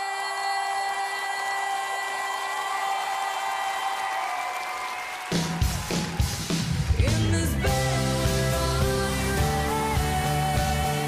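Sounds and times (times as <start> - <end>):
woman singing: 0.0 - 2.8, 7.0 - 11.0
rock band playing loudly: 5.3 - 11.0.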